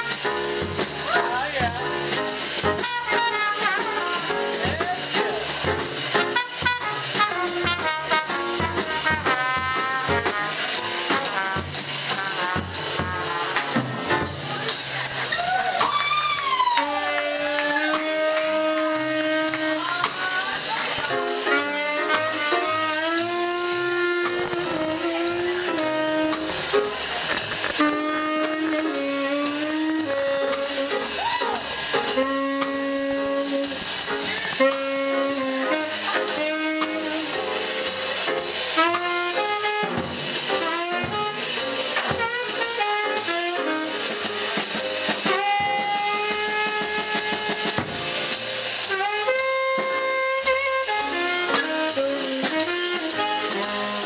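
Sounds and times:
saxophone melody: 0.0 - 15.3, 16.2 - 54.0
drums with cymbal strokes: 0.0 - 54.0
piano: 0.0 - 54.0
walking upright bass: 0.0 - 54.0.

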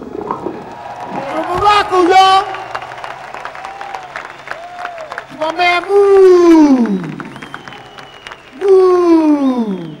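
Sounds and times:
audience applause: 0.3 - 10.0.

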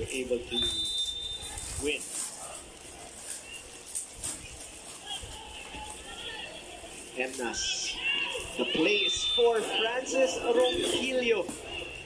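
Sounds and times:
sports commentator speaking: 0.0 - 0.8, 7.1 - 12.0
plastic bag crinkling: 1.4 - 8.8
faint background voices: 1.4 - 12.0.

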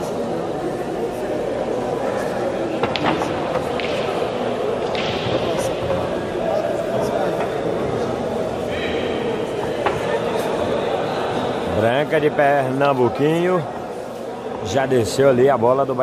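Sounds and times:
murmur of spectators talking: 0.0 - 16.0.

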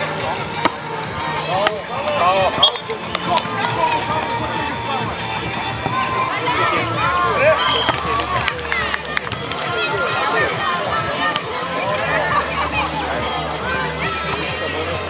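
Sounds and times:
background music: 0.0 - 15.0
people calling out and talking: 0.0 - 15.0.

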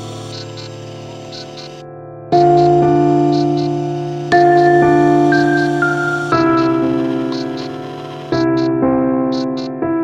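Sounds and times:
sustained keyboard chord: 0.0 - 10.0.

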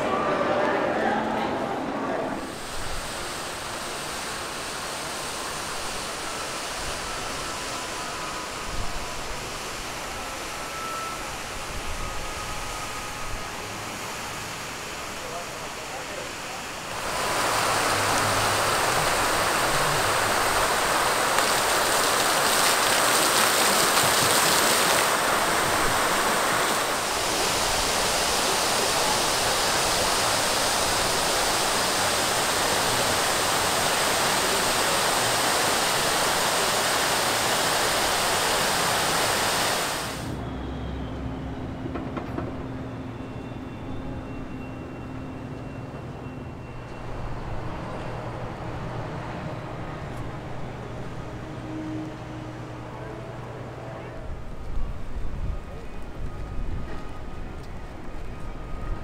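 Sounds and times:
water cascading down fountain: 2.4 - 8.6, 14.6 - 40.3.

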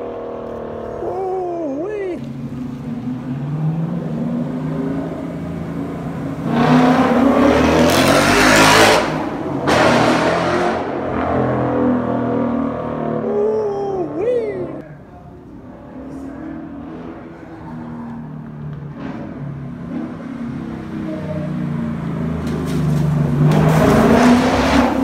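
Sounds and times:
car accelerating past: 2.4 - 13.3, 16.1 - 25.0.

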